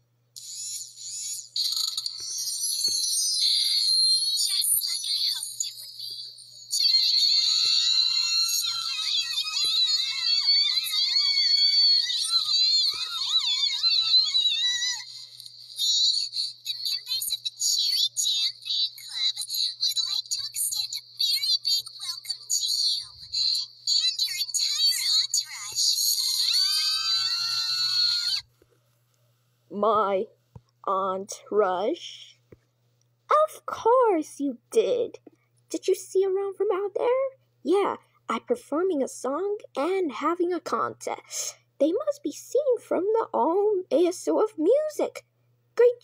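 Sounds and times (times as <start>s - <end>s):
high-pitched voices wailing: 0.4s - 28.5s.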